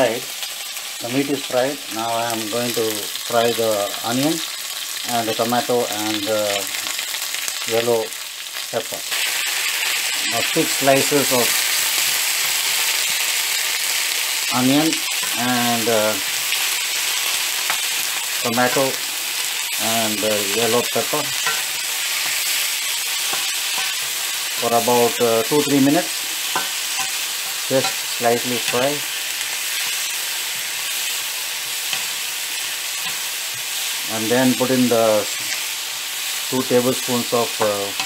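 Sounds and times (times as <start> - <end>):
vegetables sizzling in hot oil: 0.0 - 38.0
spatula tapping and scraping: 21.4 - 22.5, 23.2 - 24.1, 26.5 - 28.0.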